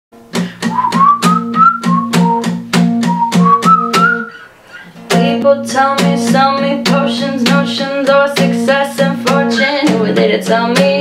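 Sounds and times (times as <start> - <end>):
acoustic guitar strumming: 0.2 - 11.0
whistled melody: 0.6 - 4.9.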